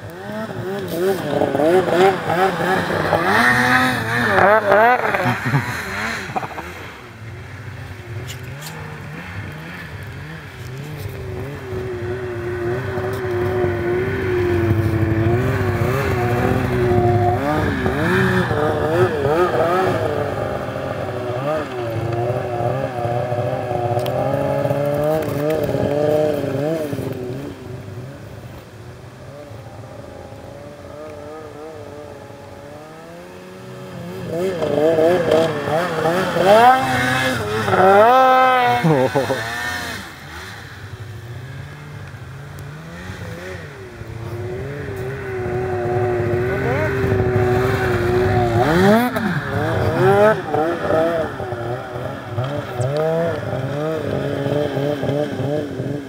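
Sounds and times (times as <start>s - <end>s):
snowmobile engine revving: 0.0s - 56.0s.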